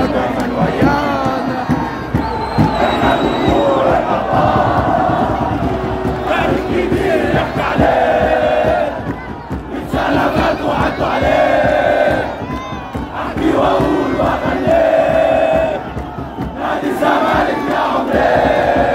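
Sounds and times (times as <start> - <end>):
crowd chanting in unison: 0.0 - 18.9.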